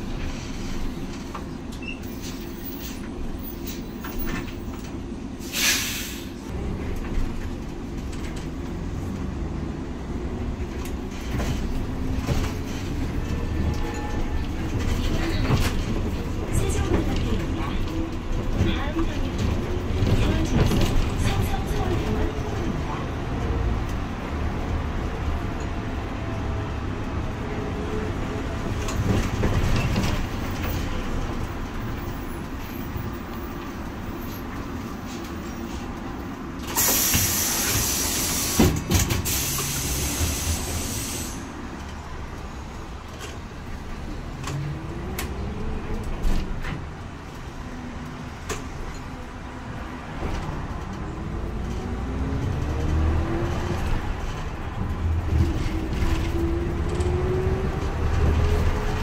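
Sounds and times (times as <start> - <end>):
bus engine and road noise: 0.0 - 59.0
air brakes hissing: 5.4 - 6.5, 36.6 - 41.5.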